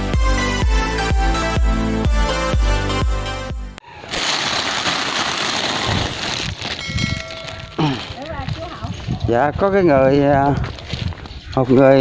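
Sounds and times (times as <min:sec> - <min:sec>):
plastic bags rustling: 0:04.0 - 0:09.5, 0:10.2 - 0:12.0.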